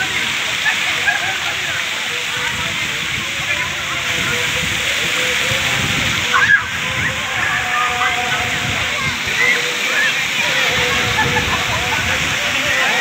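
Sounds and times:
fountains pouring water: 0.0s - 13.0s
children shouting: 6.3s - 13.0s.

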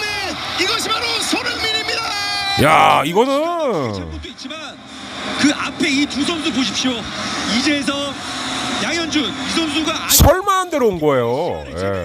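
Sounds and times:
commentator talking: 2.6s - 4.0s.

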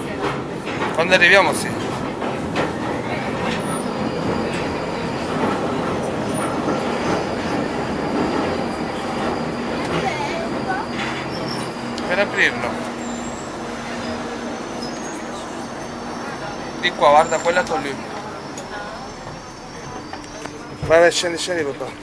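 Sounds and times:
underground train rumbling: 0.0s - 22.0s
faint high whine: 3.1s - 22.0s.

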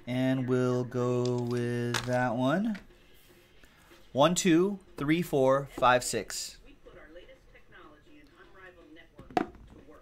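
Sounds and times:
die knocking on tabletop: 9.3s - 9.7s.

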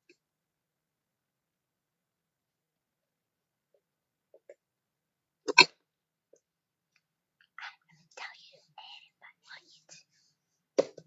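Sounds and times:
person whispering: 7.4s - 10.3s.

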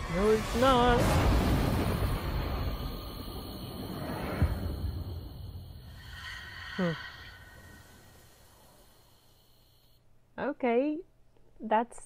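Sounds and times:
deep rumble: 0.0s - 9.4s
low thump: 0.9s - 6.0s.

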